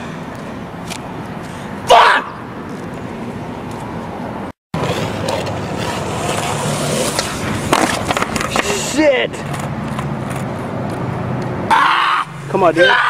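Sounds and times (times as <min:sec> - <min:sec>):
skateboard wheels rolling on concrete: 0:00.0 - 0:12.6
skateboard clacks: 0:04.8 - 0:10.6.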